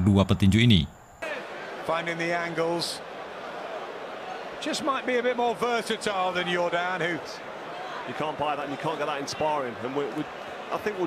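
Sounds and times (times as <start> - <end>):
man commentating: 0.0 - 2.8
arena noise: 0.0 - 11.0.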